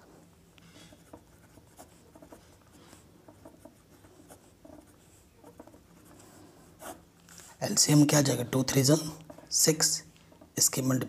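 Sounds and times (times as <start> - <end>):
pen writing on paper: 0.9 - 7.0.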